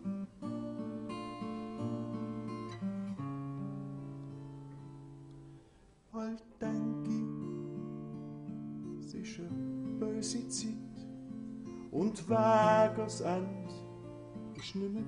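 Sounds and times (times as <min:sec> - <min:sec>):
acoustic guitar chords: 0:00.0 - 0:15.0
person singing: 0:06.2 - 0:07.6, 0:09.0 - 0:11.0, 0:11.9 - 0:13.9, 0:14.5 - 0:15.0.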